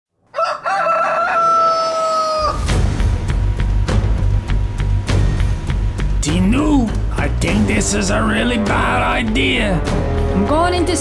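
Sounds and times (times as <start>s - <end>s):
rooster crowing: 0.3s - 2.8s.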